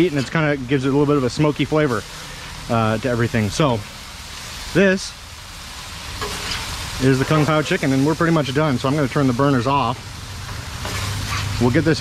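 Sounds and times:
chicken sizzling on griddle: 0:00.0 - 0:12.0
metal spatula scraping: 0:06.1 - 0:07.9, 0:10.4 - 0:12.0.

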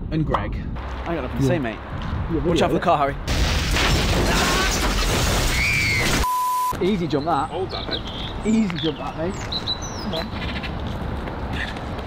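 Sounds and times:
loud crash-like noise: 0:03.3 - 0:06.2
steady beep tone: 0:06.2 - 0:06.8.

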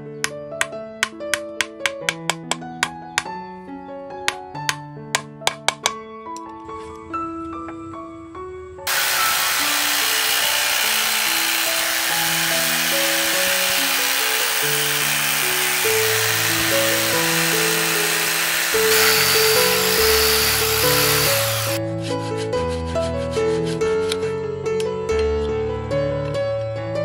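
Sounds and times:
background music with simple melody: 0:00.0 - 0:27.0
electric jigsaw cutting wood: 0:08.9 - 0:21.8.

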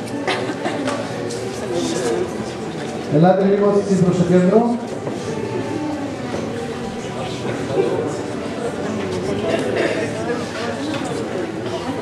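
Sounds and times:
murmur of crowded hall: 0:00.0 - 0:12.0.

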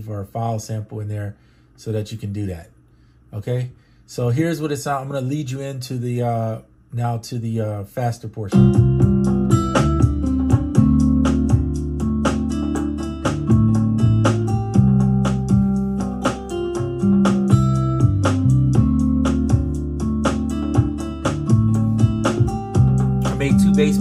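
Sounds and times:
programmed drums: 0:08.5 - 0:24.0
sustained low notes and chords: 0:08.6 - 0:24.0.

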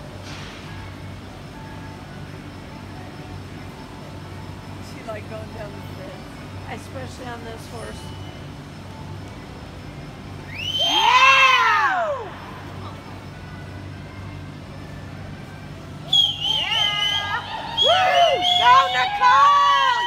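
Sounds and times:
high yelling and cheering: 0:10.5 - 0:12.5, 0:16.1 - 0:20.0
person whooping: 0:10.8 - 0:12.3, 0:16.6 - 0:20.0.

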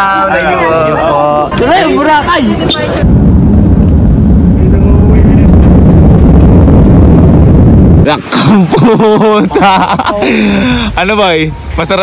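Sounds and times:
airliner engine rumble in cabin: 0:03.0 - 0:10.9.

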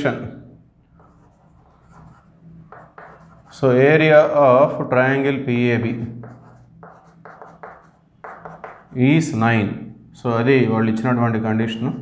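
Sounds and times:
chalk scratching on chalkboard: 0:01.0 - 0:03.8, 0:06.2 - 0:09.2.

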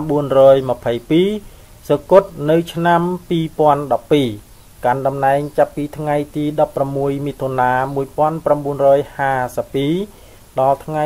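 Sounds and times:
person narrating: 0:00.0 - 0:11.0.

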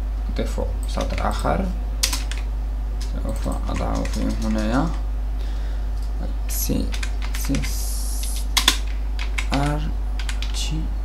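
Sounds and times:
steady low hum: 0:00.0 - 0:11.0
computer keyboard typing: 0:00.8 - 0:05.0, 0:06.8 - 0:10.6.

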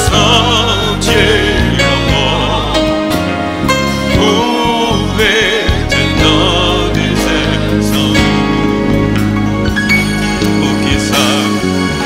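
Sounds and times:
people singing: 0:00.0 - 0:09.0, 0:10.4 - 0:12.0
band playing sustained chords: 0:00.0 - 0:12.0.

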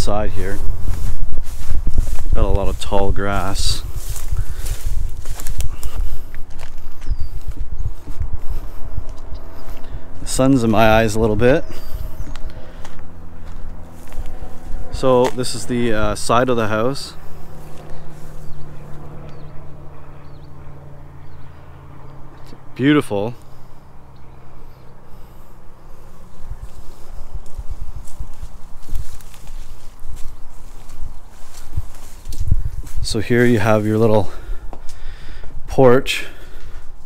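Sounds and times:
footsteps through tall grass: 0:00.0 - 0:19.9, 0:24.6 - 0:35.5
low microphone rumble: 0:00.0 - 0:22.7, 0:23.6 - 0:35.7.

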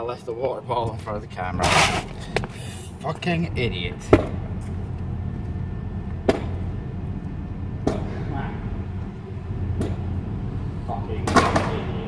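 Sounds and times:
low rumble: 0:00.7 - 0:12.0.

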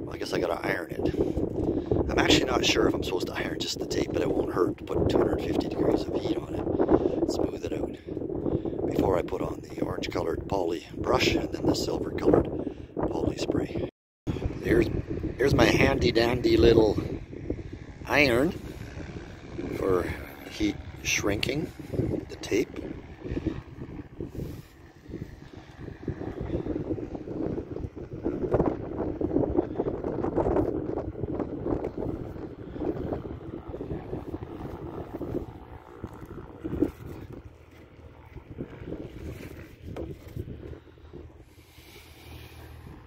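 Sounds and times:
wind buffeting microphone: 0:00.0 - 0:43.0.

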